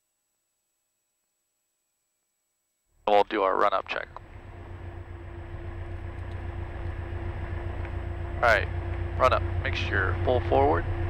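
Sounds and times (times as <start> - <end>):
steady hum: 3.0 - 11.0
aircraft engine idling: 3.1 - 11.0.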